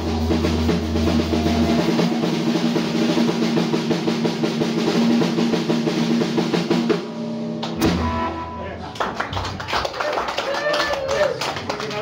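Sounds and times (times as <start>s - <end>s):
audience clapping: 8.8s - 12.0s.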